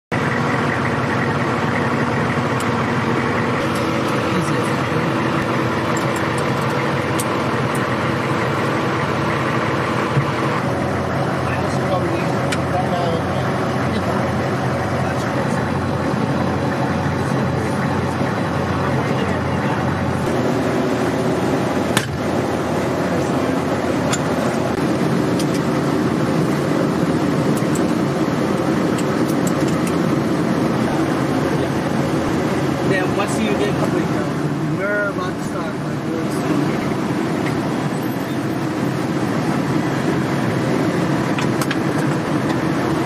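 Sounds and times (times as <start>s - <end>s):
vehicle engine rumble: 0.0s - 43.0s
indistinct voices: 0.1s - 26.7s, 27.6s - 40.6s.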